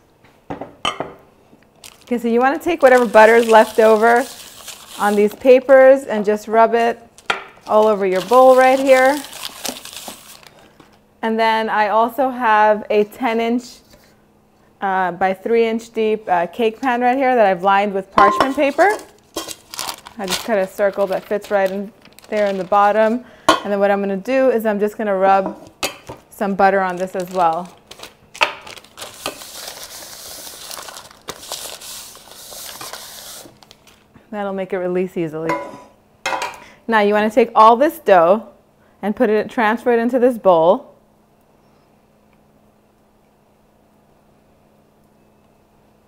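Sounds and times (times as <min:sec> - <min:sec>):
paper wrapper crinkling: 0:01.7 - 0:05.7, 0:07.1 - 0:11.0, 0:18.4 - 0:23.3, 0:26.7 - 0:34.1.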